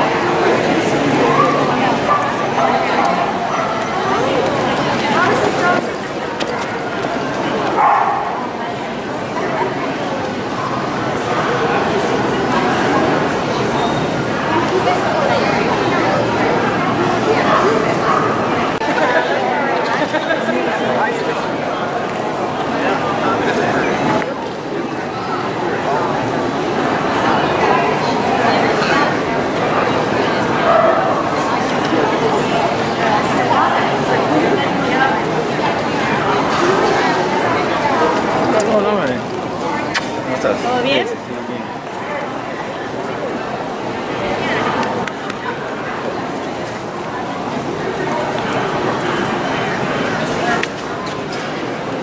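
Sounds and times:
crowd chatter: 0.0 - 52.0
dogs barking: 1.3 - 3.9, 7.7 - 8.5, 30.6 - 31.3
dog barking: 7.8 - 8.4, 30.7 - 31.2.

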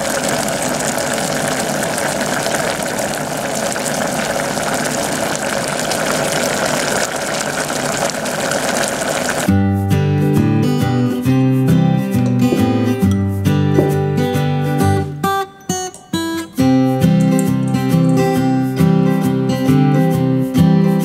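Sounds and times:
liquid bubbling in a pot: 0.0 - 9.5
acoustic guitar music: 9.5 - 21.0.

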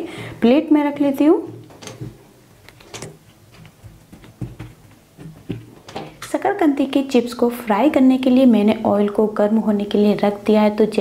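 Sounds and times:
soft taps and light knocks: 1.5 - 6.2.

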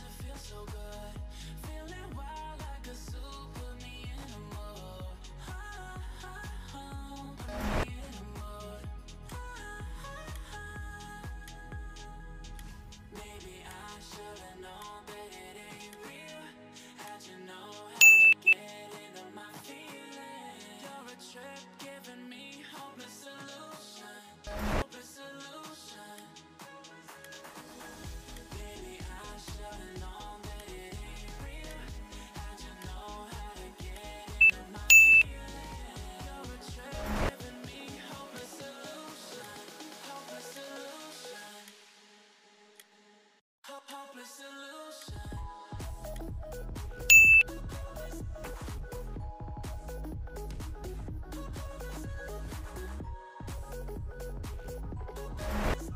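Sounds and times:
pop music with singing: 0.0 - 43.0, 43.6 - 55.9
loud electronic beeps: 18.0 - 18.6, 34.4 - 35.3, 47.1 - 47.4.

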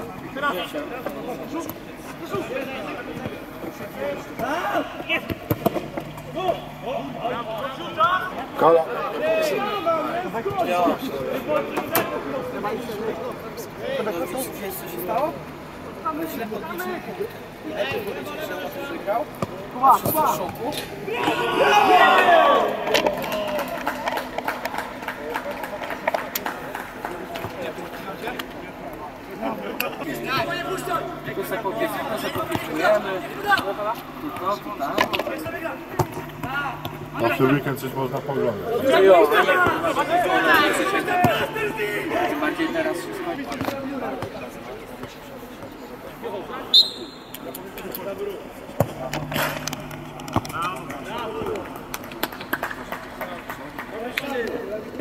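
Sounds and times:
players' voices outdoors: 0.0 - 55.0.

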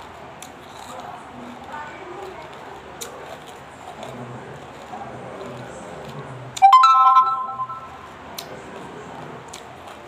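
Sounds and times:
rising notification chime: 6.6 - 8.1.

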